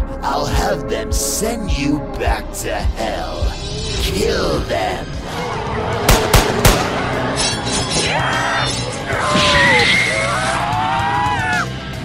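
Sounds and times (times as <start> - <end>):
background music: 0.0 - 12.0
gunshots: 6.0 - 7.4.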